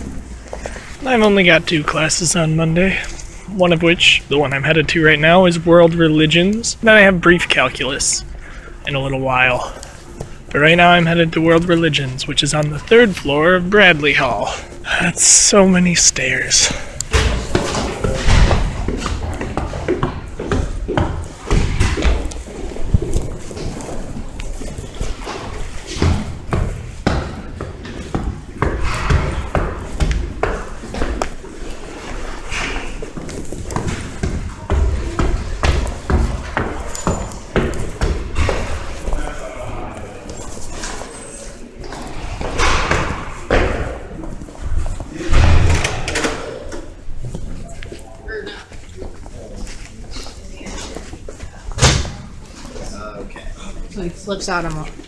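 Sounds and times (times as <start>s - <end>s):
indistinct voices: 0.0s - 18.6s
footsteps climbing stairs: 16.7s - 41.1s.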